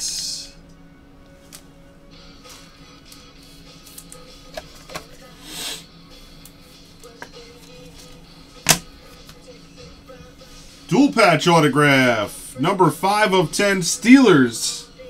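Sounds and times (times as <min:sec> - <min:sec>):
faint background music: 0:00.0 - 0:15.0.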